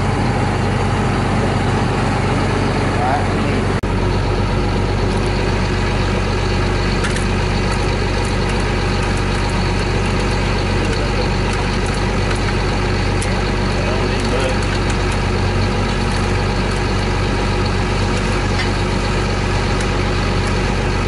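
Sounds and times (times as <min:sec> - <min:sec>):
diesel engine idling: 0:00.0 - 0:21.0.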